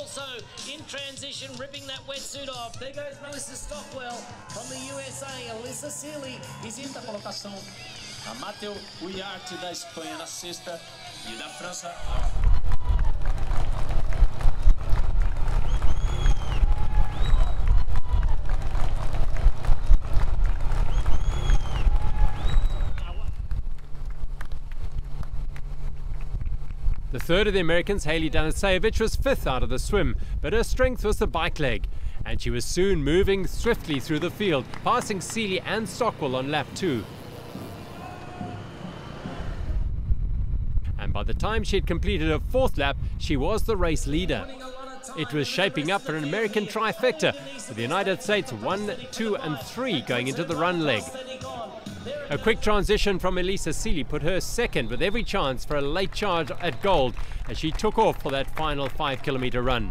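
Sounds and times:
vehicle rumble: 0:12.0 - 0:30.5, 0:31.5 - 0:44.1
heavy wind on microphone: 0:12.0 - 0:33.8, 0:39.2 - 0:44.5.

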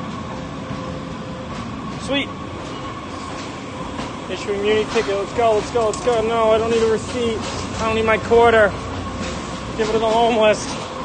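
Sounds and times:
station rumble: 0:00.0 - 0:11.0.

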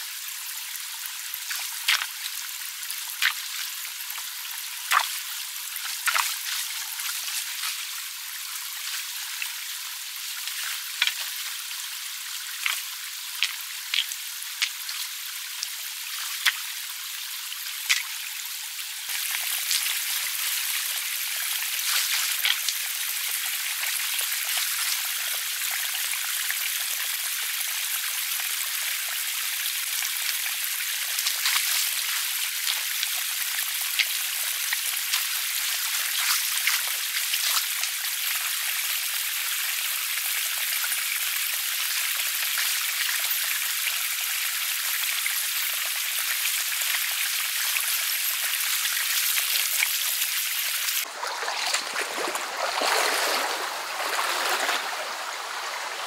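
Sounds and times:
stream running over stones: 0:00.0 - 0:56.0
splashes from person wading: 0:04.9 - 0:05.2, 0:05.8 - 0:07.9, 0:51.0 - 0:56.0.

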